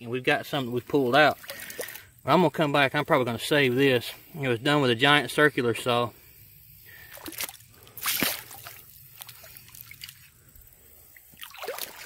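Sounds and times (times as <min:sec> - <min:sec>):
stream trickling: 0:00.0 - 0:12.0
water splashing and sloshing: 0:00.4 - 0:02.3, 0:07.0 - 0:12.0.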